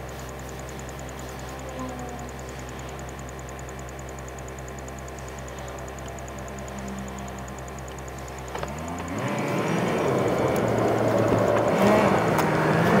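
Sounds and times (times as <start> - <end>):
car engine accelerating: 5.1 - 13.0
tyre and road noise: 8.3 - 13.0.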